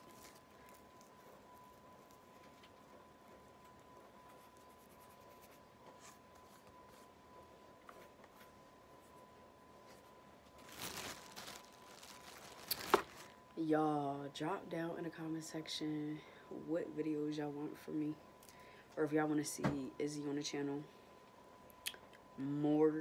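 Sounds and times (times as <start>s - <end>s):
dry plant matter rustling: 0.0s - 2.9s, 10.6s - 13.4s
plastic bag crinkling: 10.5s - 13.4s.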